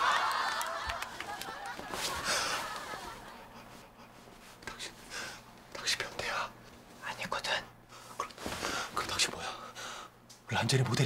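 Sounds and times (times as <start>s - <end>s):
person whispering: 4.6s - 5.0s, 5.7s - 7.7s.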